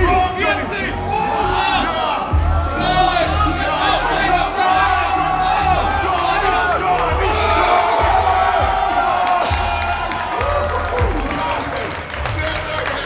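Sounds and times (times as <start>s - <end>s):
crowd shouting and cheering: 0.0s - 13.0s
music with thudding bass beat: 2.3s - 3.7s, 4.8s - 11.3s.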